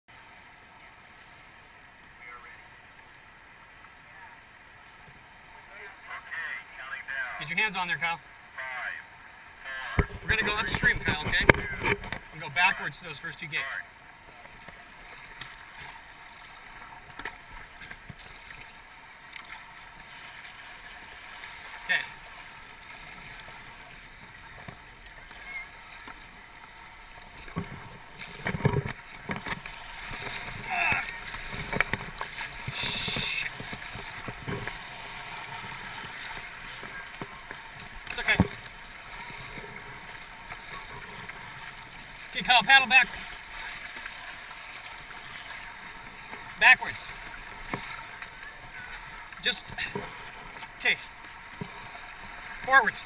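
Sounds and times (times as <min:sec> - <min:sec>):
paddles splashing in water: 0:00.1 - 0:53.0
river rapids flowing: 0:12.2 - 0:53.0.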